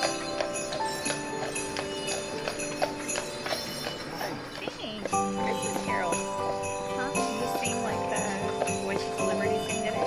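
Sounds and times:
harness bells jingling: 0:00.0 - 0:10.0
hooves clopping on pavement: 0:00.0 - 0:10.0
slow melodic music: 0:00.0 - 0:10.0.

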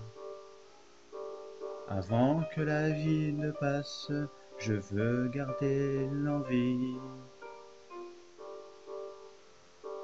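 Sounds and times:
piano-like keyboard chords: 0:00.0 - 0:10.0.

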